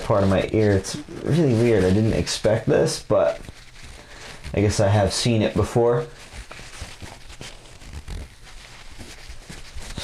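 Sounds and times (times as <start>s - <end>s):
tissue rubbing in ear: 0.0s - 10.0s.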